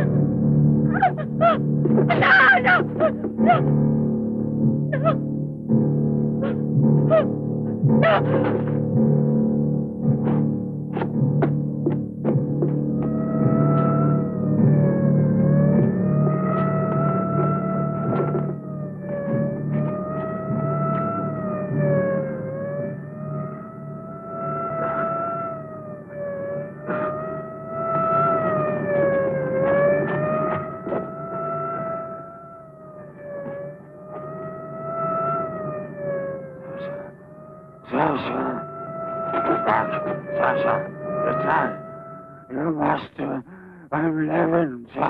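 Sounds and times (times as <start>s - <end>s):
police siren wailing: 0.0s - 3.8s, 4.8s - 5.4s, 7.9s - 8.6s, 12.8s - 44.8s
low drone: 0.0s - 45.0s.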